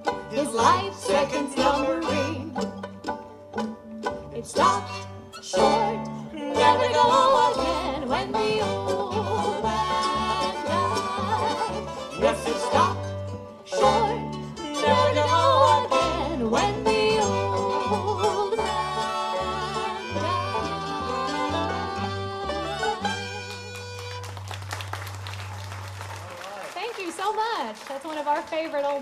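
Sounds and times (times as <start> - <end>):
bluegrass string band playing: 0.0 - 26.2.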